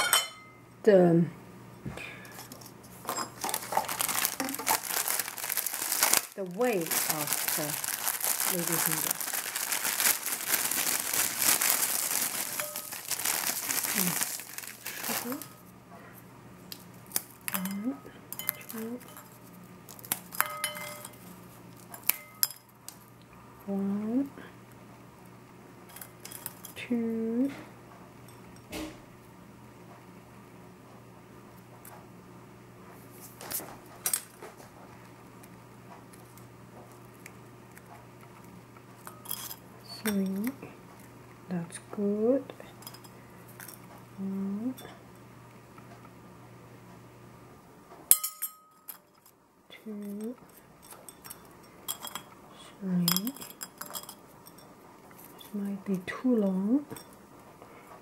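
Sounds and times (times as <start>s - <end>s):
clinks on porcelain plate: 0.0s - 0.6s, 20.4s - 21.2s, 48.1s - 49.2s, 50.8s - 52.3s
teaspoon clinking on porcelain plate: 0.0s - 0.6s, 12.5s - 13.0s, 18.4s - 19.3s, 20.4s - 21.2s, 48.1s - 49.3s, 50.0s - 52.4s, 53.0s - 54.7s.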